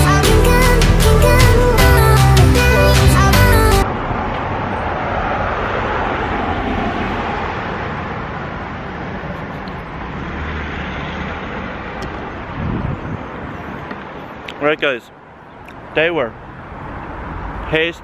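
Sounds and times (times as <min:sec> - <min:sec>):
music: 0:00.0 - 0:03.8
road traffic hum: 0:00.0 - 0:18.0.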